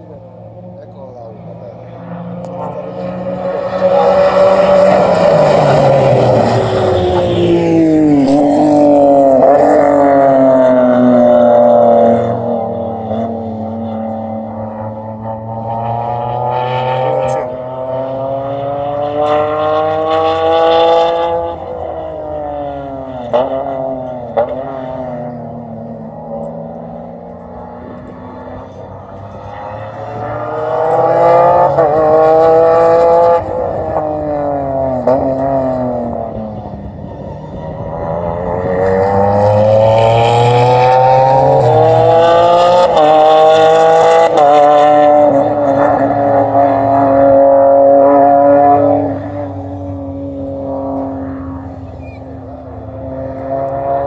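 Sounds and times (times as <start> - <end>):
race car engine revving: 0.0 - 54.0.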